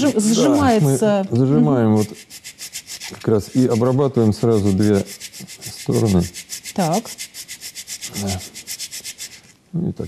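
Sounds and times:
metal file rasping: 0.0s - 0.9s, 1.7s - 9.5s.

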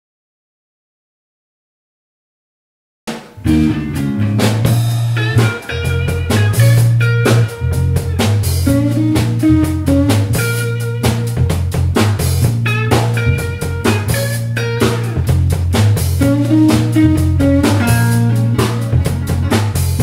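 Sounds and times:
drum kit hits: 3.1s - 20.0s
electric bass line: 3.4s - 20.0s
electric guitar: 3.4s - 20.0s.

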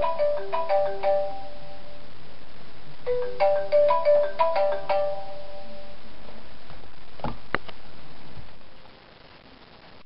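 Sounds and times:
mobile phone ringtone: 0.0s - 2.0s, 3.1s - 6.0s.

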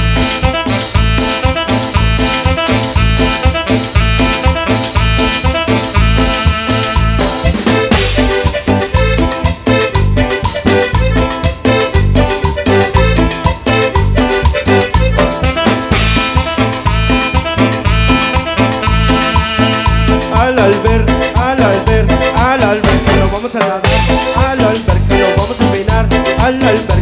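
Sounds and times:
drums dance beat: 0.0s - 27.0s
electric bass: 0.0s - 27.0s
electric guitar: 0.0s - 27.0s
electronic keyboard lead: 0.0s - 27.0s.

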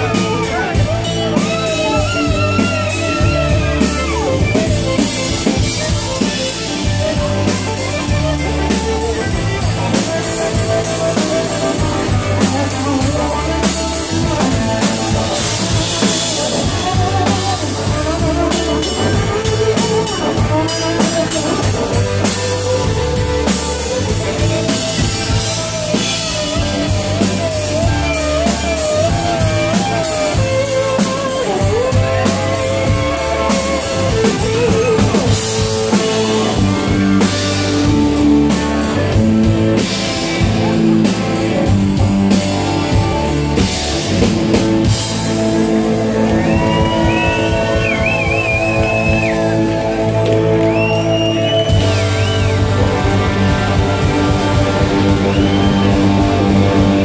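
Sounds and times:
electric guitar lead bending notes: 0.0s - 57.0s
live rock band playing: 0.0s - 57.0s.

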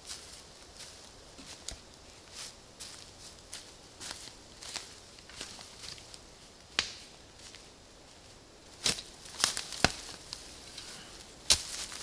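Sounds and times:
footsteps on twigs and pine needles: 0.0s - 12.0s
twig cracking: 8.8s - 10.9s.

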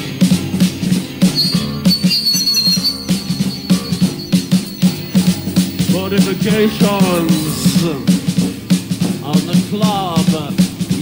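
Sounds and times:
thin high wavering tone: 1.3s - 8.0s.

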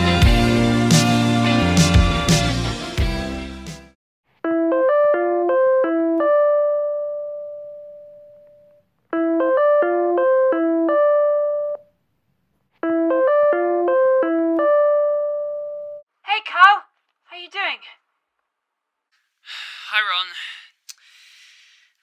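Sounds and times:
electronic piano-like ringtone: 4.5s - 8.4s, 9.2s - 11.9s, 12.8s - 16.0s.

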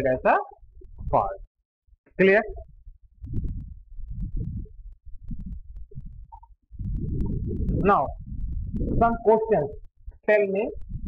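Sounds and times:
low uneven rumbling: 2.4s - 11.0s.

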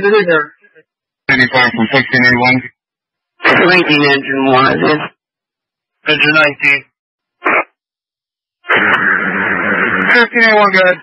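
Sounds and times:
radio static: 7.4s - 7.8s.

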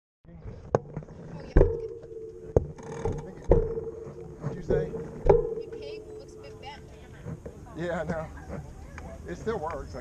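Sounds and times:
steady ringing tone: 1.4s - 7.1s.

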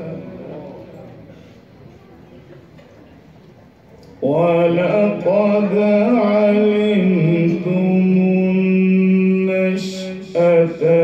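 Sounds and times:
man reciting melodically: 0.0s - 0.8s, 4.2s - 11.0s.

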